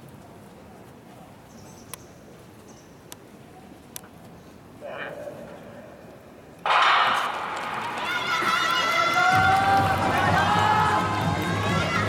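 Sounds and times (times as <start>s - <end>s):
spectators shouting and cheering: 6.7s - 12.0s.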